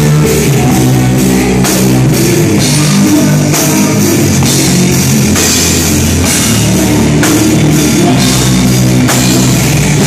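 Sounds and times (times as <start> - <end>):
punk rock band playing: 0.0 - 10.0.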